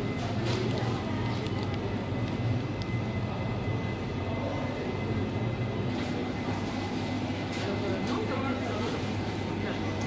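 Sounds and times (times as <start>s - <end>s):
refrigeration hum: 0.0s - 10.0s.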